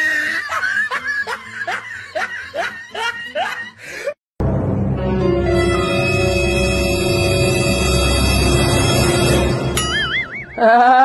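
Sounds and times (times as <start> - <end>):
person laughing: 0.0 - 3.9, 10.1 - 11.0.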